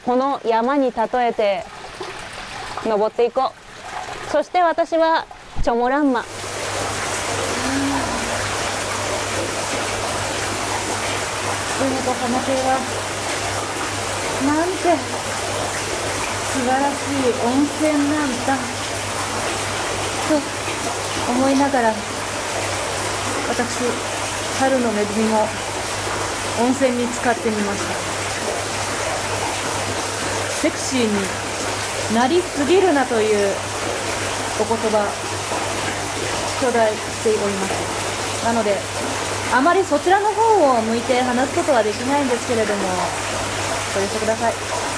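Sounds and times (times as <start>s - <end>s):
water rushing into rock bath: 0.0s - 44.9s.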